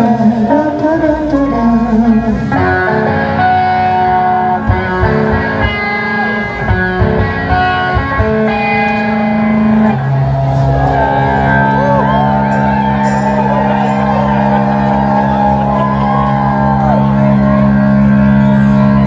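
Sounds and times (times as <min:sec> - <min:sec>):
crowd cheering and whooping: 0:02.5 - 0:19.0.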